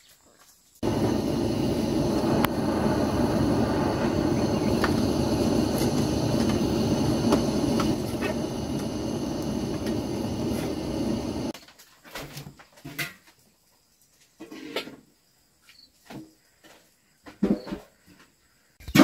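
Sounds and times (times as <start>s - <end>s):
butane torch hissing: 0.8s - 11.6s.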